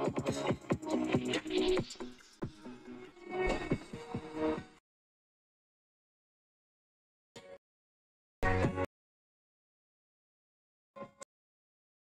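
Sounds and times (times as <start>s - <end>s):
music from phone speaker: 0.0s - 4.8s.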